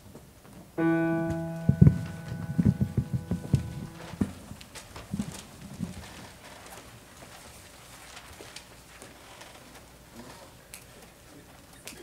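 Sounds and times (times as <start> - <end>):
thumps and knocks: 0.8 - 4.4
piano chord: 0.8 - 4.6
faint clicks and rustles: 1.3 - 12.0.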